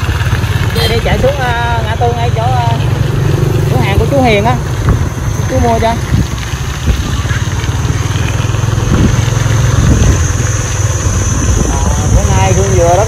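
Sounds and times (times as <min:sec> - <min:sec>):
motorbike engine running: 0:00.0 - 0:13.0.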